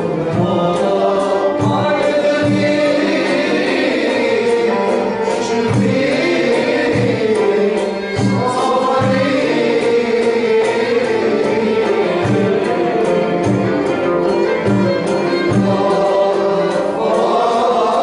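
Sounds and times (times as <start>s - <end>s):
chorus singing with instruments: 0.0s - 18.0s
drum strokes: 0.0s - 18.0s.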